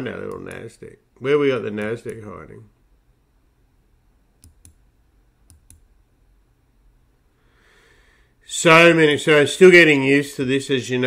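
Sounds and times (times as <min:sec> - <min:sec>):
computer mouse clicks: 0:04.4 - 0:04.8, 0:05.4 - 0:05.9.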